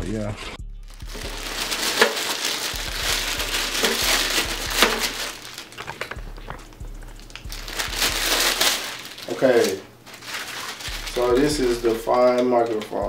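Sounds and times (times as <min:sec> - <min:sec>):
plastic bag crinkling: 0:00.9 - 0:13.0.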